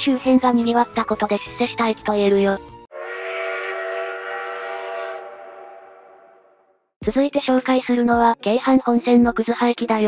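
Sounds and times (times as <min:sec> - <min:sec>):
train whistle chord: 0:02.9 - 0:06.8.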